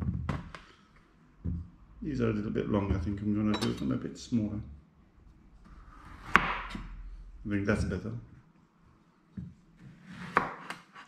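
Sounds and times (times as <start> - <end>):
knife cutting vegetable: 9.8 - 11.0.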